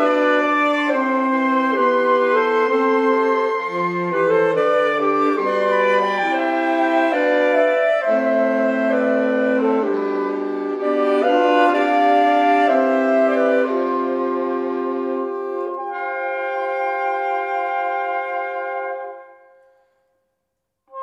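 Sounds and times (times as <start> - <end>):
saxophone ensemble playing chords: 0.0 - 19.6.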